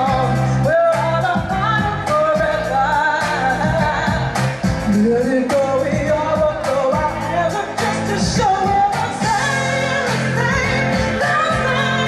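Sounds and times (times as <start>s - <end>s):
woman singing lead vocal: 0.0s - 12.0s
steady drum beat: 1.3s - 12.0s.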